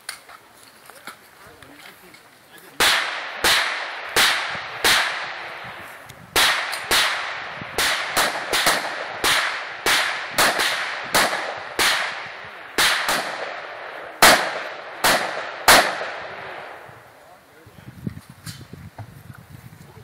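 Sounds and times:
gunshots with echo: 2.8s - 5.8s, 6.4s - 16.8s.

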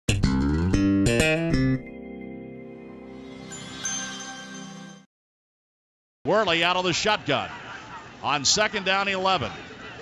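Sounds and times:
logo jingle: 1.3s - 5.1s
soft ringing chord: 1.9s - 5.1s.

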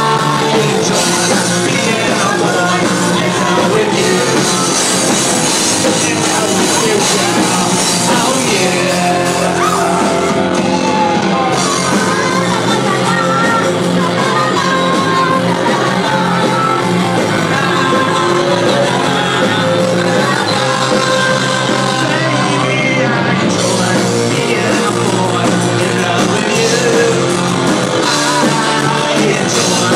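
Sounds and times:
electric guitar: 0.0s - 29.9s
live rock band: 0.0s - 29.9s
person singing and shouting: 0.0s - 29.9s.

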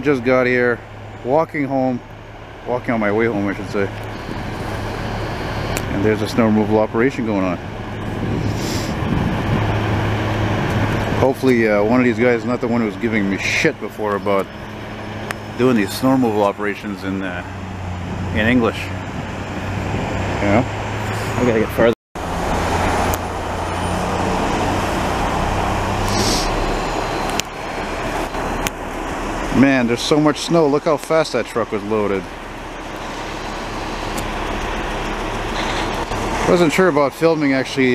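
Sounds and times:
low engine hum: 0.0s - 37.9s
air hiss: 8.4s - 9.0s, 26.0s - 26.7s.

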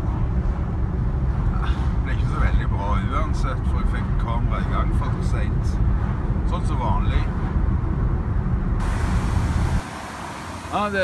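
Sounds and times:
vehicle engine and road rumble: 0.0s - 11.0s
outdoor hiss: 8.8s - 11.0s.

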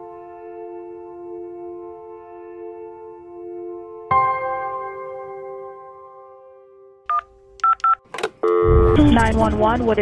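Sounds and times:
telephone keypad beeps: 7.1s - 8.0s.

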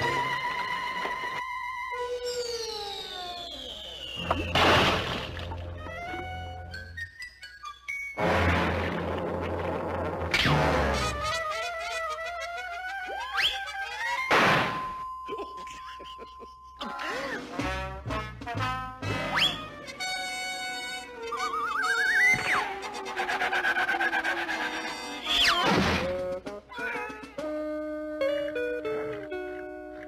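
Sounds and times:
cartoon falling whistle: 1.9s - 4.6s, 13.0s - 15.0s, 19.3s - 19.7s, 21.3s - 22.7s, 25.2s - 25.7s
cartoon thunk: 14.3s - 14.9s, 25.6s - 26.2s.

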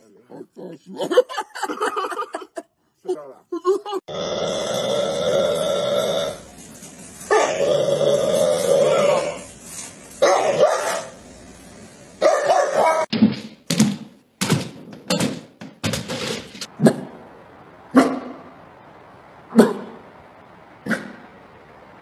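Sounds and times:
dog growling and barking: 0.2s - 1.3s, 7.3s - 9.5s.

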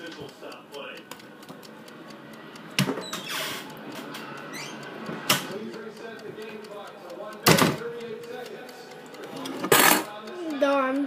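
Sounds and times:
short rising squeak: 3.0s - 3.7s, 4.4s - 4.9s.

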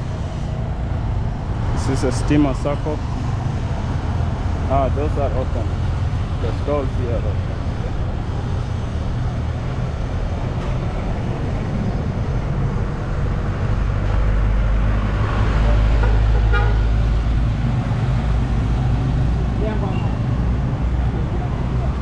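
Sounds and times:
motorcycle engines rumbling: 0.0s - 22.0s
vehicle horn beeping: 16.0s - 17.0s.

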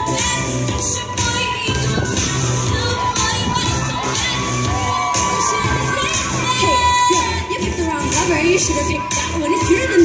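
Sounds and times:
pop music with steady beat: 0.0s - 10.0s
audience cheering and shrieking: 3.6s - 7.4s.

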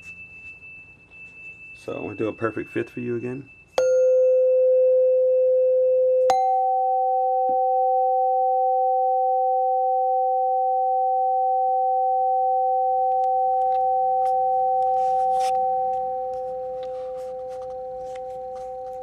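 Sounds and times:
metal tubes ringing steady tones: 0.0s - 4.8s.

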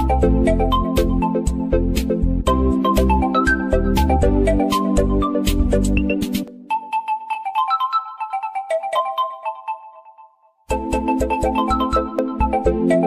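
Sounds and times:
background music with beat: 0.0s - 9.8s, 10.7s - 13.0s
bell-like melody notes: 6.7s - 13.0s.

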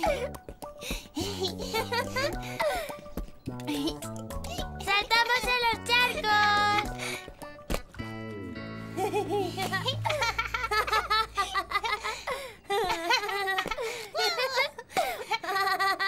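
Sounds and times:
light background music: 0.0s - 16.0s
children giggling and laughing: 1.1s - 5.2s, 8.8s - 16.0s.

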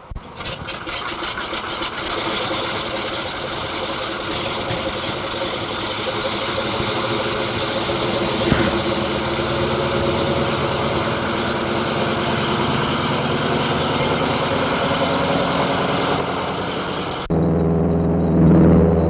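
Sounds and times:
radial aircraft engine running: 0.0s - 19.0s.

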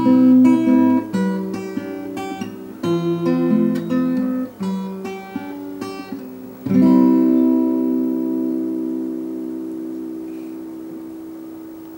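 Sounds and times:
acoustic guitar chord ringing: 0.0s - 11.9s.

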